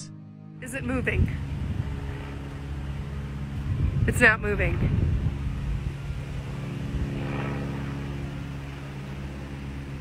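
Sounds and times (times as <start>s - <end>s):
small plane engine droning: 0.0s - 10.0s.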